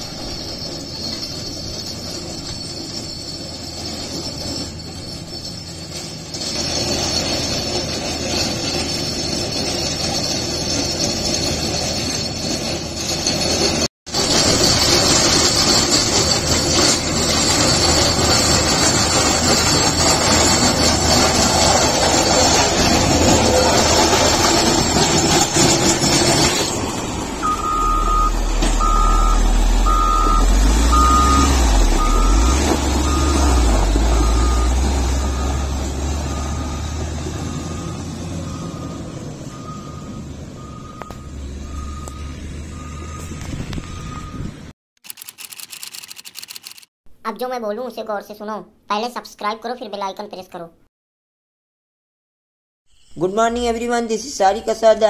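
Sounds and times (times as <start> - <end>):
blade scraping gravel: 0.0 - 36.4
diesel engine under load: 0.0 - 44.7
reversing alarm beeping: 27.4 - 44.6.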